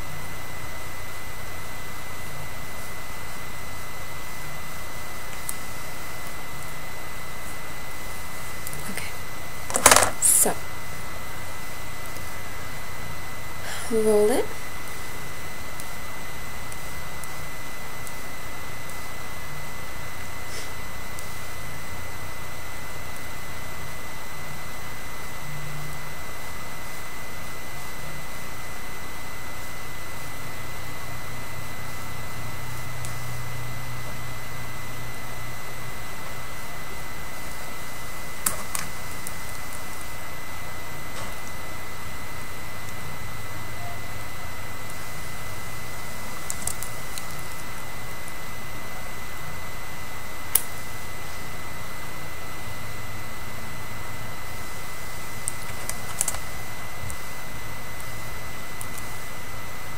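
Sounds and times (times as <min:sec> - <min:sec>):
thin high whine: 0:00.0 - 0:59.9.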